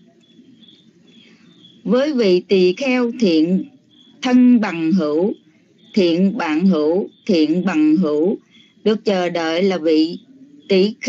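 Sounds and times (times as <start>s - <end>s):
faint background hum: 0.0s - 11.0s
high-pitched chirping: 0.0s - 11.0s
person reading aloud: 1.8s - 11.0s.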